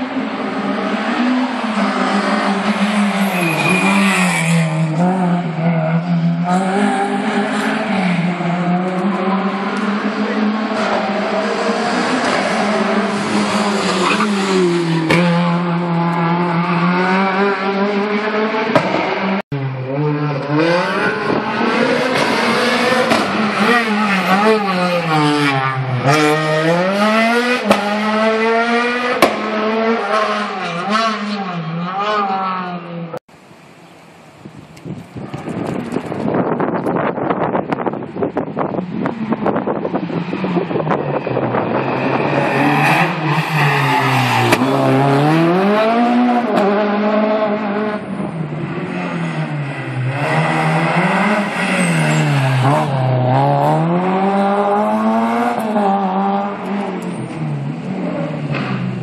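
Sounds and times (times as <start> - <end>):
car engine revving: 0.0 - 33.2, 38.6 - 59.0.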